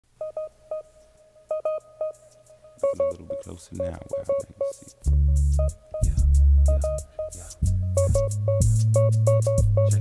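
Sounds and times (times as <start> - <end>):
faint held tone: 0.2 - 10.0
short electronic beeps: 0.2 - 10.0.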